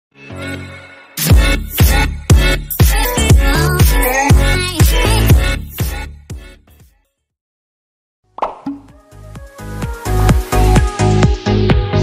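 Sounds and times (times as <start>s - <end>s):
short pop sound effect: 8.4s - 9.0s.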